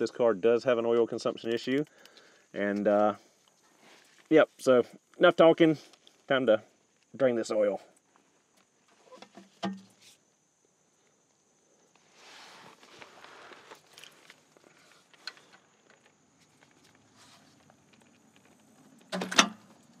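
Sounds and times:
faint rustling: 11.8s - 18.9s.

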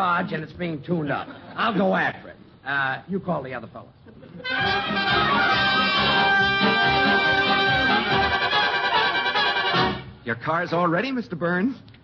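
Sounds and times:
band playing musical bridge: 4.4s - 10.2s.

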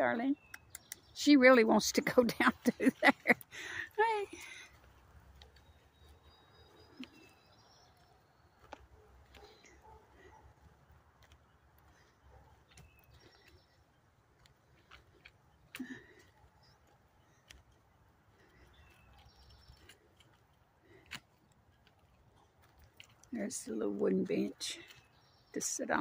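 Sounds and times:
distant bird chirps: 0.0s - 26.0s.

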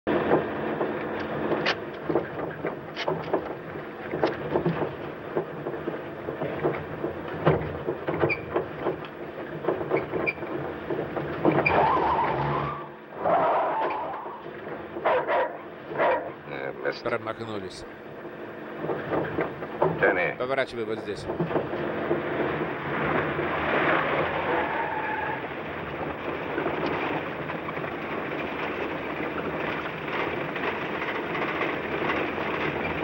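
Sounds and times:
car engine and road noise: 0.1s - 33.0s
knocks and rattles: 0.1s - 33.0s
tyres squealing: 8.2s - 8.7s, 11.3s - 17.9s, 24.0s - 25.7s.

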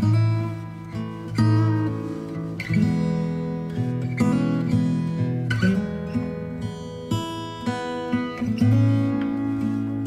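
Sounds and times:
acoustic guitar picking: 0.0s - 10.0s.

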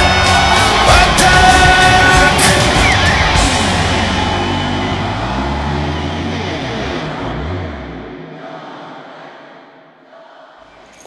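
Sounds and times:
hard rock final chord ringing: 0.0s - 7.7s.

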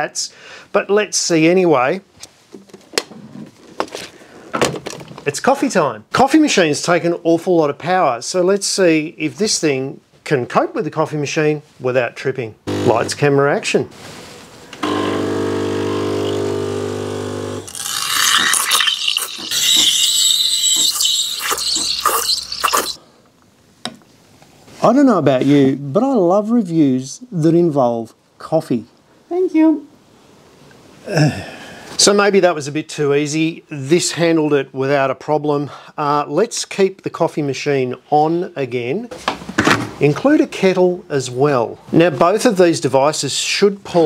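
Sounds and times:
espresso machine pump buzzing: 12.7s - 13.2s, 14.8s - 23.0s
steam wand hissing in milk: 18.4s - 23.0s.

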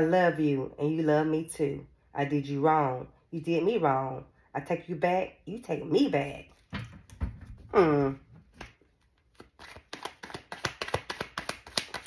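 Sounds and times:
cards being shuffled: 8.5s - 12.0s.

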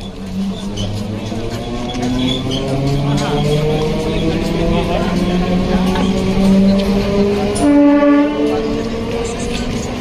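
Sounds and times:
crowd chatter: 0.0s - 10.0s
train horn: 7.4s - 9.0s.

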